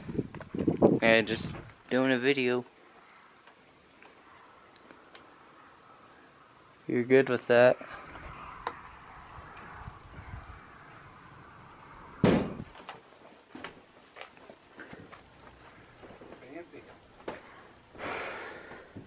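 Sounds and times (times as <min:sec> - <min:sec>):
loud bang: 0:12.1 - 0:12.7
faint knocks and rustles: 0:12.6 - 0:17.7.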